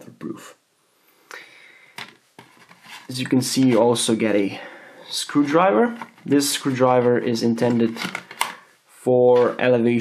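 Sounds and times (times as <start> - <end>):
soft rubbing: 2.4 - 4.1.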